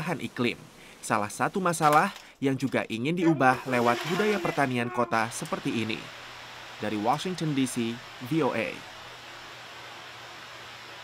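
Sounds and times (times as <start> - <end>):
fan hiss and hum: 0.0 - 11.0.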